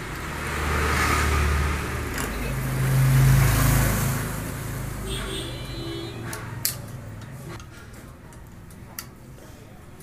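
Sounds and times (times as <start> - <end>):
vehicle engine passing: 0.0 - 5.2.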